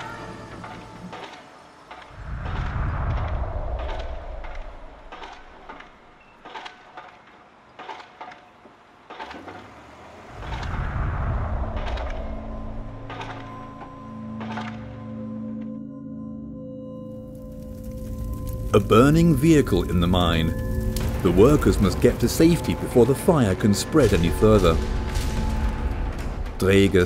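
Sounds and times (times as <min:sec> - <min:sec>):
low rumbles: 0:02.1 - 0:06.2, 0:09.6 - 0:14.4, 0:17.0 - 0:27.0
steady droning tones: 0:10.0 - 0:27.0.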